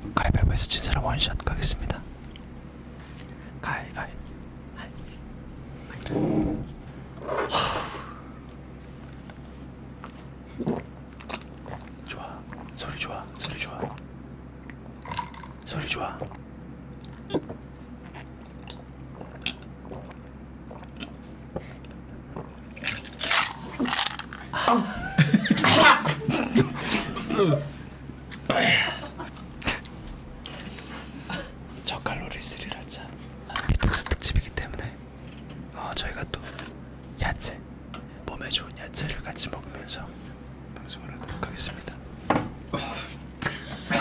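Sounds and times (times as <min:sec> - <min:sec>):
person whispering: 0:03.6 - 0:05.0, 0:31.8 - 0:33.1, 0:34.2 - 0:35.0, 0:35.7 - 0:36.5, 0:38.3 - 0:40.2, 0:40.8 - 0:42.0
man gulping a fizzy drink: 0:17.0 - 0:21.2.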